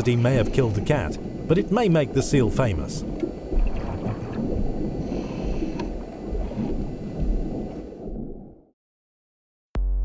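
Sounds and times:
underwater rumble of moving water: 0.0s - 8.7s.

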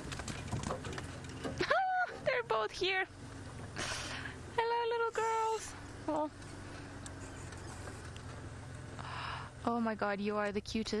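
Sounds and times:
rattles and knocks from vehicle body: 0.0s - 2.6s
vehicle engine rumble: 0.0s - 11.0s.

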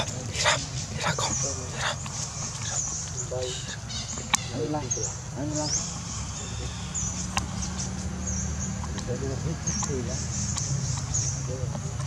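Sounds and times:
baby monkey squealing: 0.0s - 4.6s.

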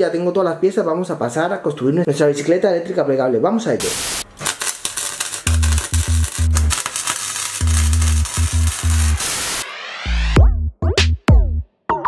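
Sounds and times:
tv static hiss with crackles: 3.8s - 9.6s
heavy electronic bass beat: 5.5s - 6.8s, 7.6s - 11.7s.

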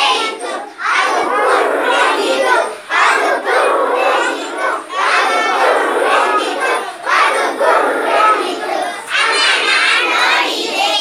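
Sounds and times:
children singing in unison: 0.0s - 11.0s.

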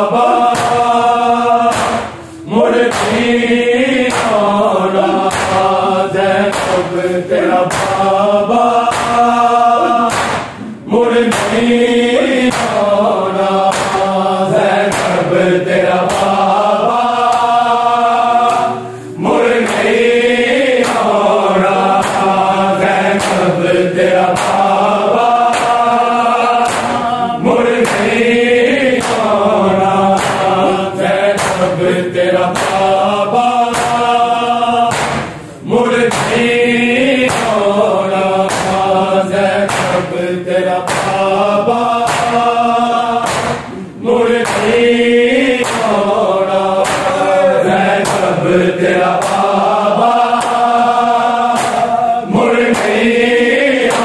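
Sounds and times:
men chanting in unison: 0.0s - 54.0s
hands slapping chests: 0.5s - 1.0s, 1.7s - 3.3s, 4.0s - 4.5s, 5.2s - 5.8s, 6.4s - 8.2s, 8.8s - 9.4s, 10.0s - 15.3s, 15.9s - 17.6s, 18.4s - 18.8s, 19.4s - 23.5s, 24.1s - 29.4s, 30.1s - 31.8s, 32.4s - 33.0s, 33.6s - 34.2s, 34.9s - 35.5s, 36.1s - 36.6s, 37.2s - 38.9s, 39.5s - 40.2s, 40.8s - 41.3s, 41.9s - 42.6s, 43.2s - 44.9s, 45.5s - 46.1s, 46.7s - 49.6s, 50.2s - 50.8s, 51.4s - 53.2s, 53.8s - 54.0s.

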